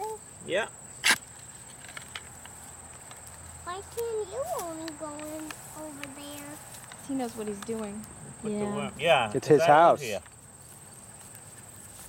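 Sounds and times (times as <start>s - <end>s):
digging tool crunching into soil: 1.0s - 2.3s
soil scraping and ticking: 1.0s - 8.2s.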